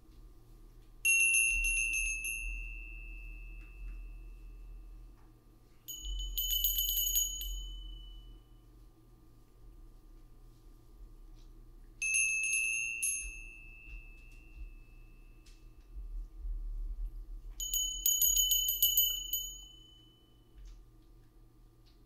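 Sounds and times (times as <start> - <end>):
small metal bell ringing: 1.0 - 5.1, 5.8 - 8.7, 12.0 - 15.8, 17.6 - 20.6.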